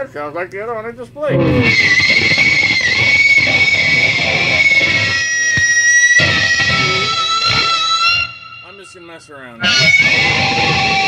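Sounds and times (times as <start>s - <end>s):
electric guitar playing: 1.3s - 9.0s, 9.6s - 11.0s.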